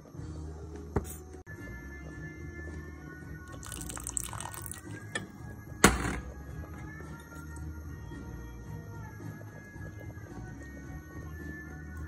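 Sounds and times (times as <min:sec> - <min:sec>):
background music: 0:00.0 - 0:12.0
sauce pouring from bottle: 0:03.6 - 0:04.9.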